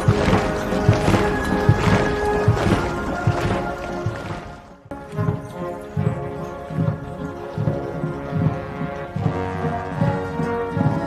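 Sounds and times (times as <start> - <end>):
deep drum beat: 0.0 - 11.0
military band playing slow march: 0.0 - 11.0.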